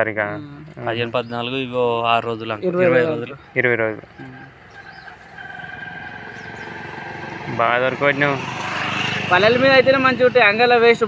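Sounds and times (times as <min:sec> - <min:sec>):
vehicle engine running: 0:02.9 - 0:11.0.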